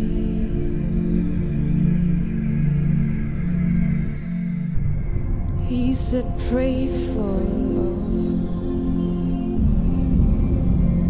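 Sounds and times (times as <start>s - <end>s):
dense low bass: 9.6s - 11.0s.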